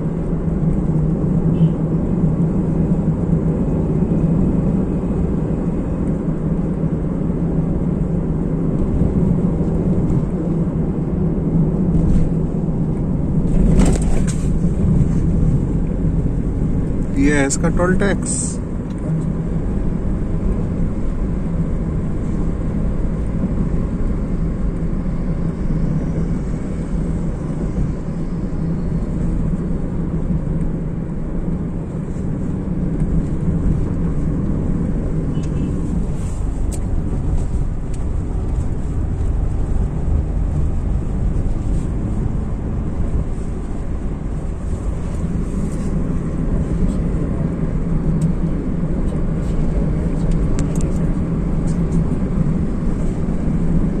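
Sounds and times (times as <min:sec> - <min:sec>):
car engine and tyre rumble: 0:00.0 - 0:54.0.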